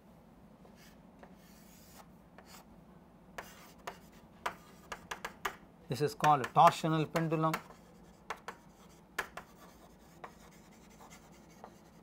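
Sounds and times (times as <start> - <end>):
chalk writing on chalkboard: 0.7 - 2.7, 3.4 - 5.6, 6.2 - 12.0.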